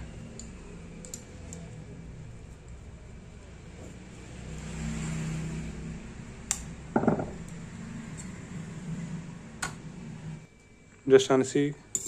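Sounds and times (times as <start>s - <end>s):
low mechanical hum with hiss: 0.0s - 12.0s.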